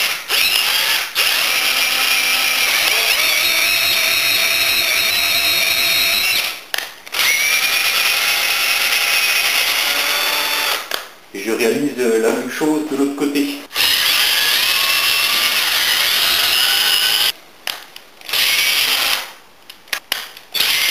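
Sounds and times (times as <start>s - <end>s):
drill motor whine: 0.0s - 6.6s, 7.2s - 10.8s, 13.8s - 17.3s, 18.3s - 19.2s, 20.6s - 20.9s.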